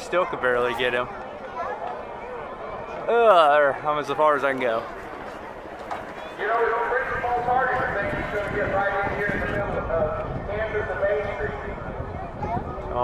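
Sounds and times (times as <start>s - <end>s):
voice over loudspeaker: 6.4s - 13.0s.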